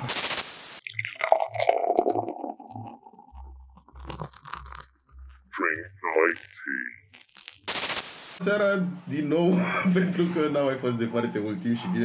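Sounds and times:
crunchy fizzing texture: 0.1 - 5.1.

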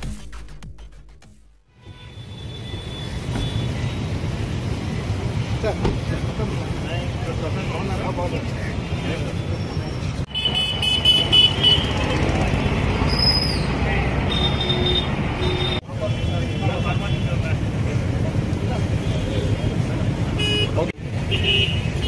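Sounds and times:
vehicle horns tooting: 1.7 - 4.2, 8.9 - 17.5, 19.0 - 22.0
traffic rumble: 1.8 - 22.0.

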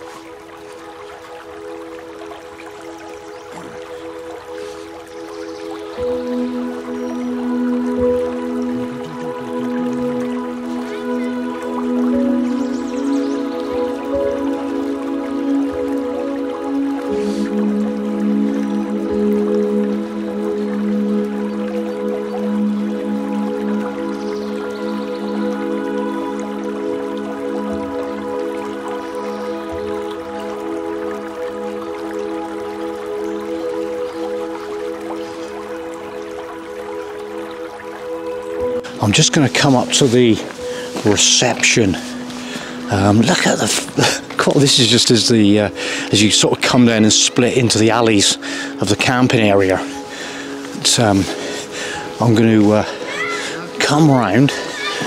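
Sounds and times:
background music of held chords: 0.0 - 55.0.

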